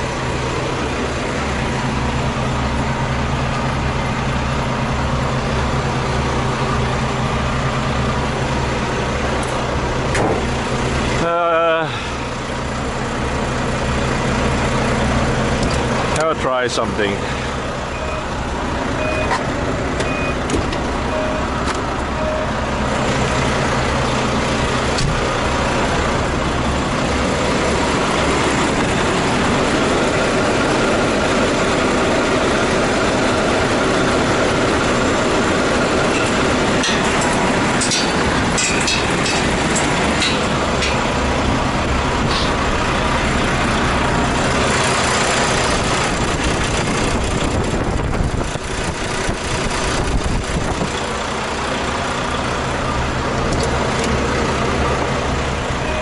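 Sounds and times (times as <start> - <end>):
diesel truck engine idling: 0.0 - 56.0.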